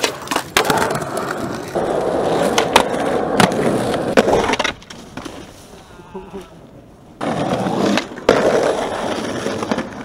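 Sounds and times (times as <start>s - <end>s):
skateboard clack: 0.0s - 5.6s, 6.6s - 10.0s
skateboard wheels rolling on concrete: 0.0s - 10.0s.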